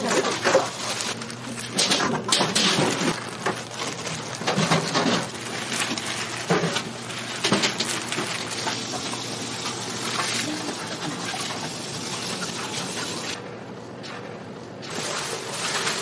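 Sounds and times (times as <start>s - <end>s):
plastic wrap crinkling: 0.0s - 13.0s
shop background hiss: 0.0s - 16.0s.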